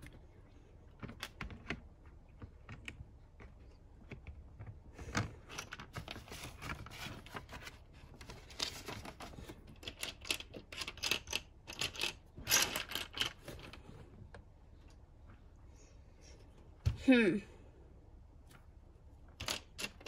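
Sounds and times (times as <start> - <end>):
plastic bricks clicking and rattling: 8.2 - 13.8, 19.4 - 20.0.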